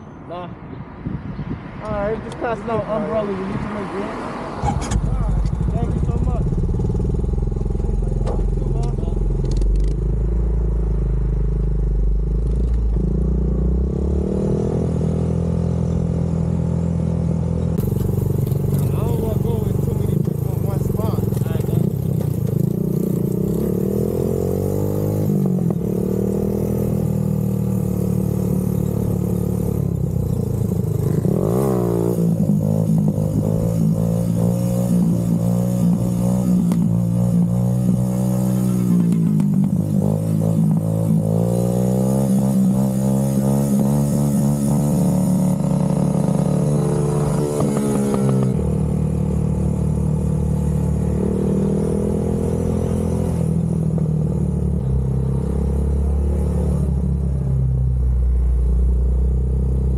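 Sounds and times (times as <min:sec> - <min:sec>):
quad engine revving: 0:17.8 - 0:54.4.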